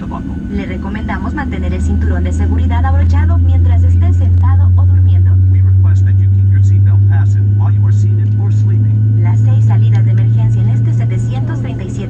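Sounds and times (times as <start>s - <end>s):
airplane cabin drone: 0.0s - 12.0s.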